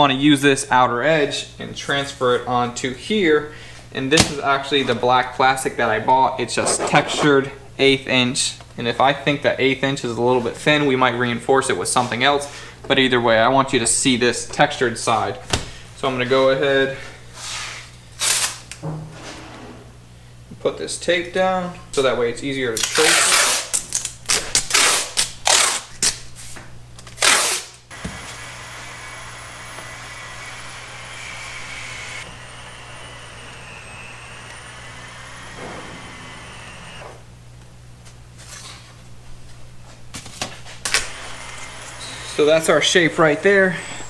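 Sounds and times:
tape ripping off roll: 18.2s - 18.8s, 27.0s - 27.8s.

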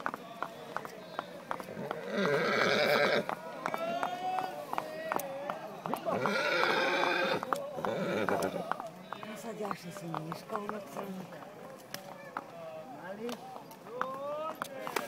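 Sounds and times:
horse hooves clopping on asphalt: 0.0s - 15.0s.

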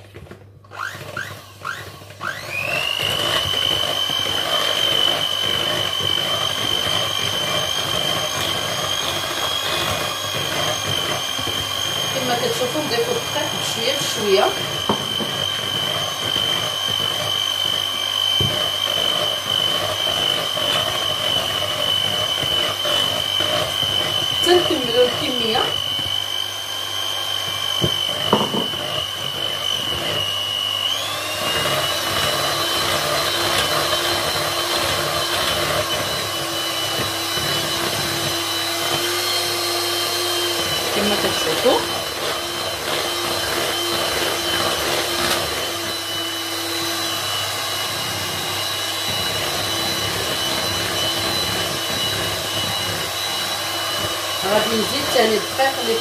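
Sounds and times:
electric hand mixer whirring: 0.0s - 56.0s.

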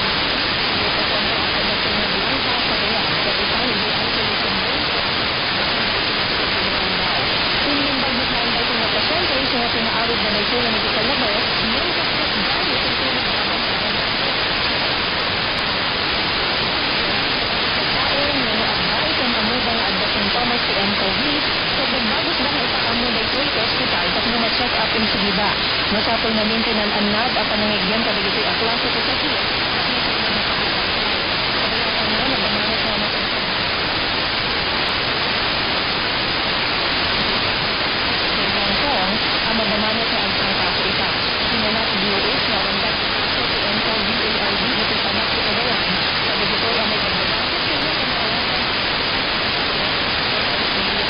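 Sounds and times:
faint radio voice: 0.0s - 51.0s
radio static hiss: 0.0s - 51.0s.

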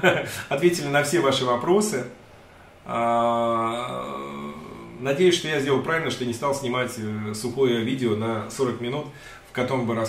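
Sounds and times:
man's drawn-out hesitation sound: 2.8s - 10.0s.

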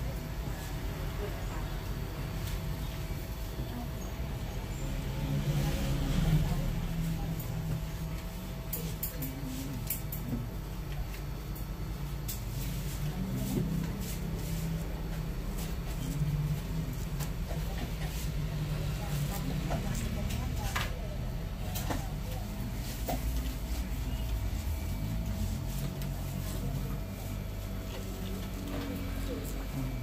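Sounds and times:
street traffic rumble: 1.3s - 8.7s.

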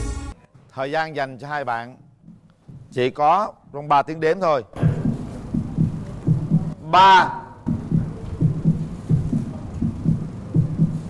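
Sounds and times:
heartbeat thumps: 2.2s - 3.0s, 4.8s - 6.8s, 7.6s - 11.0s
steady low hum: 4.8s - 11.0s.

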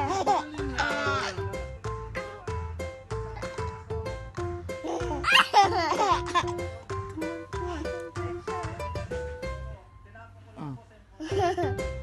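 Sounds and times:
baby laughing: 0.0s - 1.5s, 3.3s - 3.8s, 4.8s - 8.0s
ukulele music: 0.0s - 9.8s, 11.3s - 12.0s.

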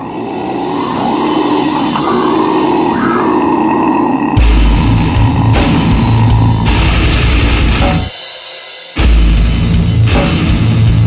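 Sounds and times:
harsh growled scream: 0.0s - 7.8s.

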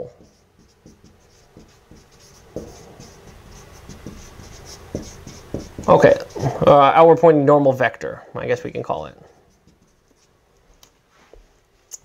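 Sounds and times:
marker writing on whiteboard: 0.0s - 6.8s, 9.2s - 10.4s.

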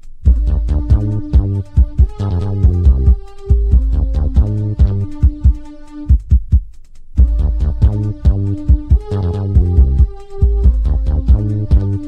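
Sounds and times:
techno music: 0.0s - 12.0s
pounding kick drum: 0.2s - 12.0s.

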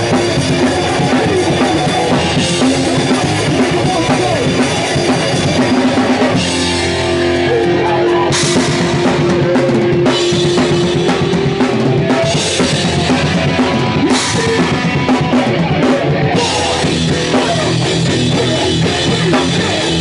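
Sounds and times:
punk band playing: 0.0s - 20.0s.

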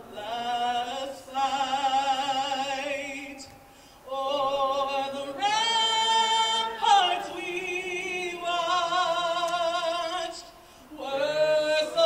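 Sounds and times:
woman singing unaccompanied: 0.0s - 3.5s, 4.1s - 12.0s.

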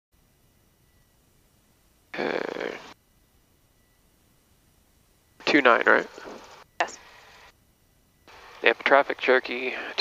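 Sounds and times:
short vocal sound over headset: 2.2s - 2.9s.

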